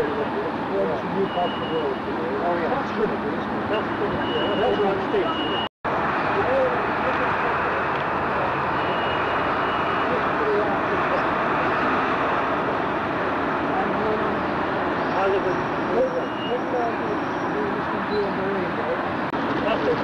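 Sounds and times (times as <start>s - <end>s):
faint voices: 0.0s - 9.2s, 9.9s - 20.0s
steady background noise: 0.0s - 20.0s.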